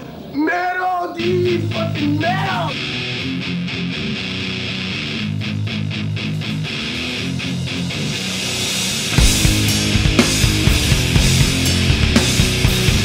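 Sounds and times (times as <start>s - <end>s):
electric guitar riff: 1.2s - 13.0s
punk rock band playing: 1.2s - 13.0s.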